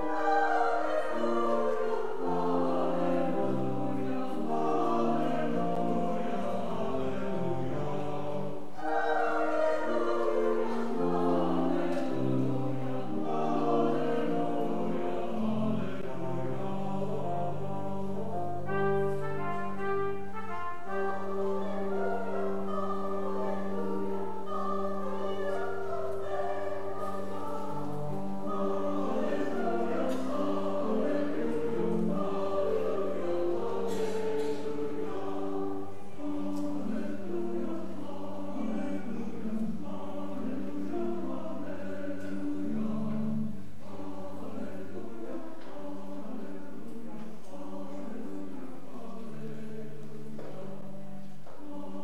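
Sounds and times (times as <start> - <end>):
choir singing: 0.0 - 52.0
instrumental accompaniment: 0.0 - 52.0.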